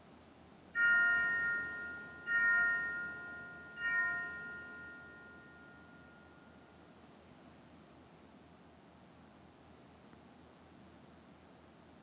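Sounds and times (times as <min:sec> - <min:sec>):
altar bell ringing: 0:00.8 - 0:06.6.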